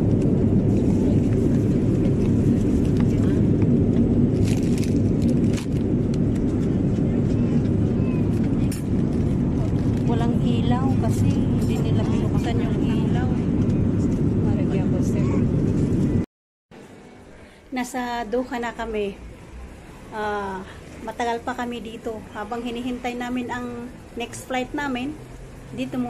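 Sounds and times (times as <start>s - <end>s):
airliner cabin drone: 0.0s - 17.6s.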